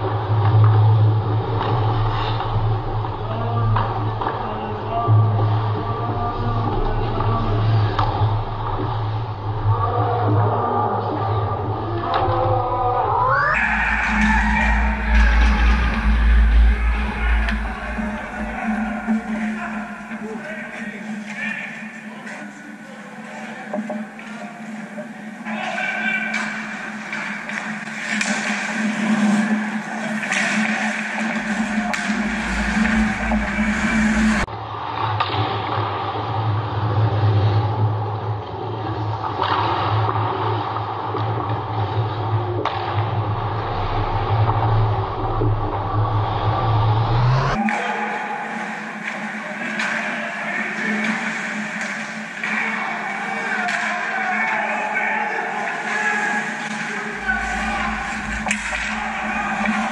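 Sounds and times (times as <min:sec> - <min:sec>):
low rink hum: 0:00.0 - 0:59.9
hockey sticks and puck clicking: 0:23.3 - 0:34.2, 0:48.5 - 0:59.9
skates scraping ice: 0:26.4 - 0:34.5, 0:47.7 - 0:59.9.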